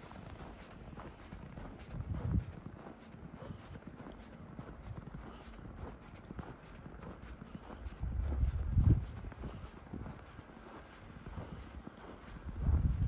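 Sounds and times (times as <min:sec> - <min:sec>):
footsteps in snow: 0:00.0 - 0:13.0.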